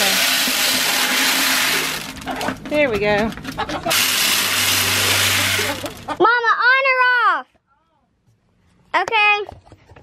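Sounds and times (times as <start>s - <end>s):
grain feed pouring into feeder: 0.0s - 2.2s, 3.9s - 6.2s.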